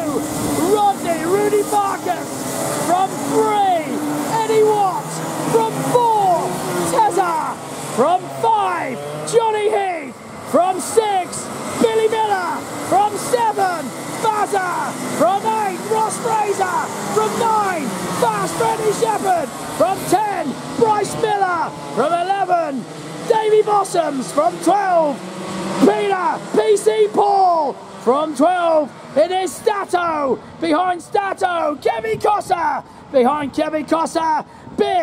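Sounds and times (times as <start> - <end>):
commentator talking: 0.0 - 35.0
racing kart engines: 0.0 - 35.0.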